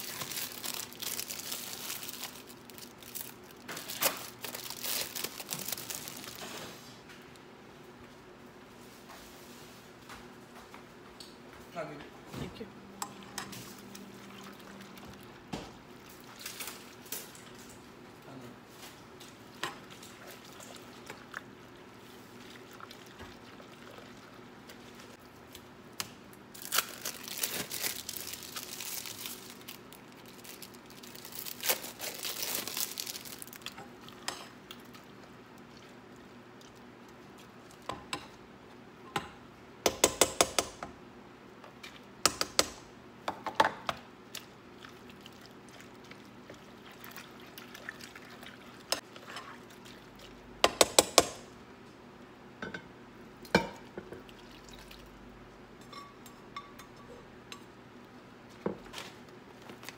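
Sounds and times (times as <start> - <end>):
plastic wrappers crinkling: 0.0 - 6.8, 26.5 - 33.9.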